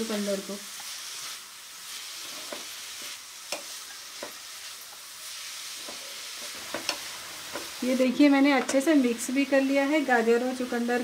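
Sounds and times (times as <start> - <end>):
vegetables sizzling in a pan: 0.0 - 11.0
spatula scraping a pan: 0.8 - 7.8.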